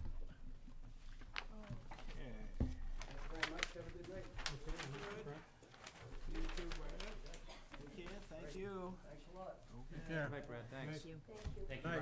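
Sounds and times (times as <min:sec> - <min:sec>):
indistinct conversation: 0:01.3 - 0:12.0.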